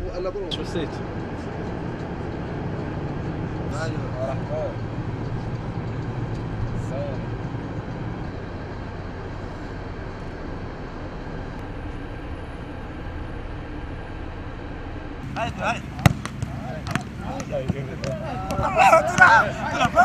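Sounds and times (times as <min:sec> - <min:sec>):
coach engine and road noise: 0:00.0 - 0:20.0
faint voices: 0:15.3 - 0:20.0.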